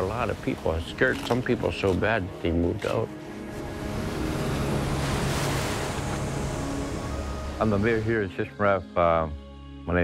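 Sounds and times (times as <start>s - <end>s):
waves breaking on shore: 0.0s - 2.2s, 2.8s - 8.2s
wind: 0.0s - 10.0s.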